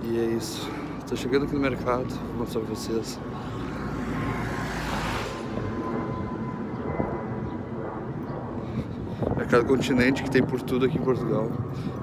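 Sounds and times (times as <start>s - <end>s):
low street rumble: 0.0s - 12.0s
vehicle passing: 0.9s - 8.2s.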